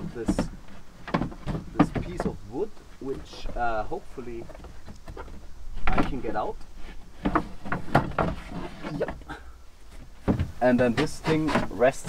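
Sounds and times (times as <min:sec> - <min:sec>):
wooden board knocking and scraping: 0:00.0 - 0:03.6, 0:04.3 - 0:12.0.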